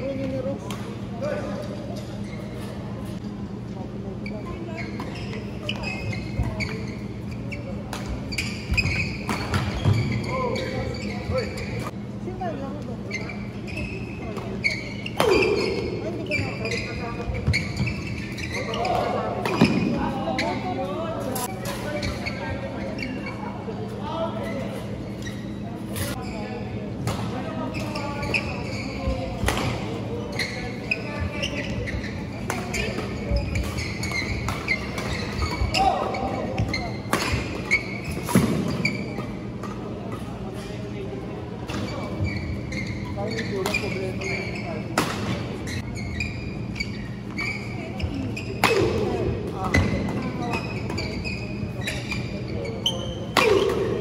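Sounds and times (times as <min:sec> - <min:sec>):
voices echoing in a hall: 0:00.0 - 0:54.0
racket hitting shuttlecock: 0:53.3 - 0:54.0.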